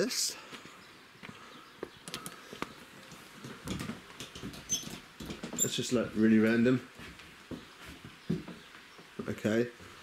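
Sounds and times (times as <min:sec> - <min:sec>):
footsteps clicking and knocking: 0:01.2 - 0:09.9.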